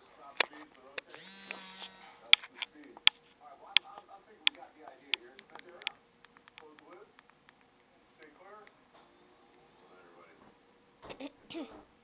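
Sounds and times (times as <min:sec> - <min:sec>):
steady electric buzz: 0:01.0 - 0:02.4
sharp clicks: 0:04.5 - 0:08.8.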